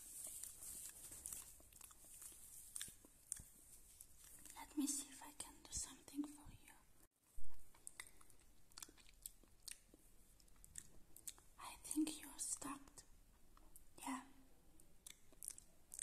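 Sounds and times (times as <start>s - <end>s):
soft whispering: 0.0s - 7.1s, 11.4s - 13.2s, 13.9s - 14.5s
mouth clicks and wet smacks: 1.7s - 4.6s, 7.7s - 11.5s, 15.0s - 16.0s.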